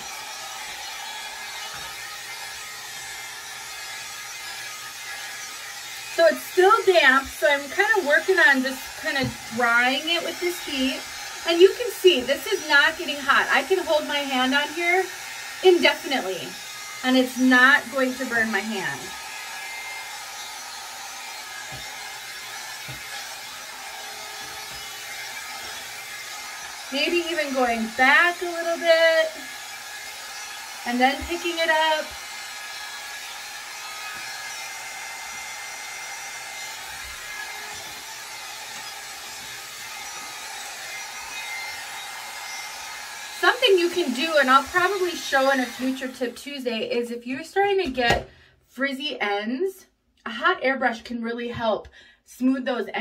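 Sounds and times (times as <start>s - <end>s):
hot air brush whirring: 0.0s - 46.6s.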